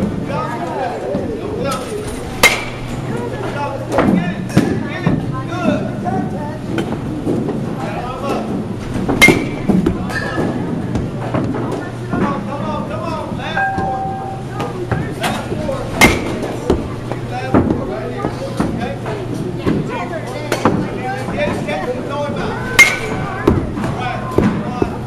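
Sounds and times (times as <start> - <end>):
baseball bat cracking ball: 2.4 - 2.9, 9.2 - 10.3, 22.8 - 23.6.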